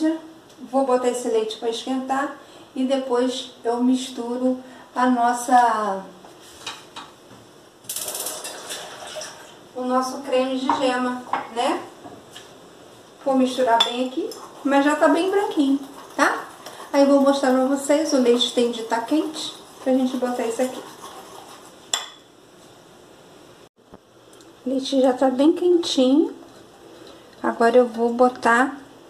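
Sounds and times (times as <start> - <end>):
whisk clinking against glass bowl: 13.8 - 22.3.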